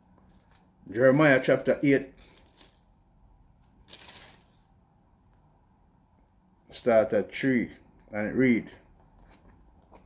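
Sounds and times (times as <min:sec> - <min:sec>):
page turning rustle: 0:02.2 - 0:03.0, 0:03.6 - 0:04.7.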